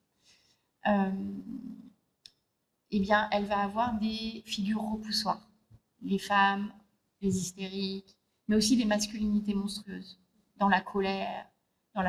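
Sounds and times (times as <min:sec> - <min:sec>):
woman speaking: 0:00.9 - 0:01.7, 0:03.0 - 0:05.4, 0:06.0 - 0:10.0, 0:10.6 - 0:11.4.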